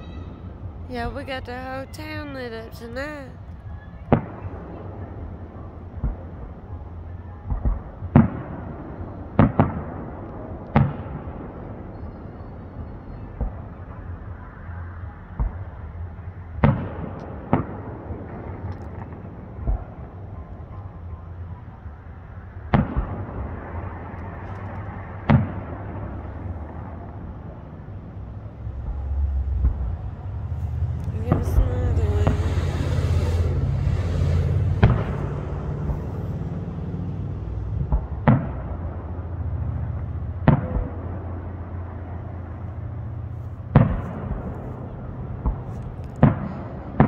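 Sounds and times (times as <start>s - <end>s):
distant fireworks bangs: 0.0s - 47.0s
low background rumble: 0.0s - 47.0s.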